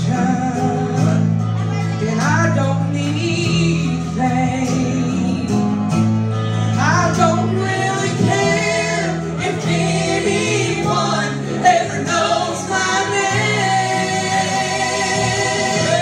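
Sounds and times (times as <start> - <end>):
instrumental accompaniment: 0.0 - 16.0
women singing gospel in harmony: 6.8 - 16.0.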